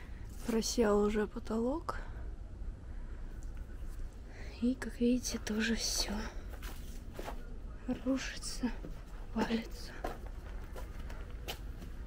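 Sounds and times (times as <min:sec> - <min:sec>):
low steady microphone rumble: 0:00.0 - 0:12.0
woman's voice: 0:00.4 - 0:02.2, 0:04.4 - 0:06.5, 0:07.8 - 0:10.2
faint scuffs and crackles: 0:05.4 - 0:08.2, 0:08.8 - 0:12.0.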